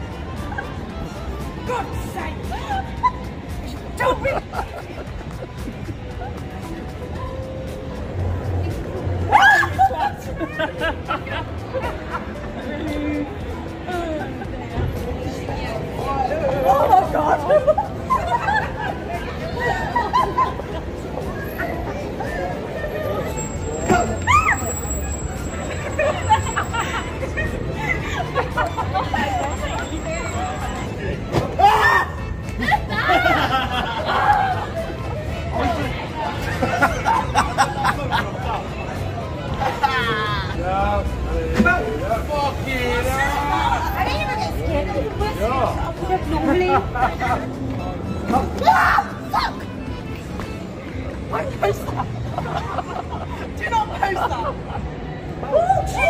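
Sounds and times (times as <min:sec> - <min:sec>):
women chattering: 0:00.0 - 0:07.0, 0:08.1 - 0:31.3, 0:43.1 - 0:56.0
city street rumble: 0:00.0 - 0:56.0
women laughing: 0:02.3 - 0:06.5, 0:09.2 - 0:12.7, 0:16.6 - 0:29.9, 0:31.8 - 0:38.8, 0:39.6 - 0:40.6, 0:46.2 - 0:47.6, 0:51.5 - 0:55.9.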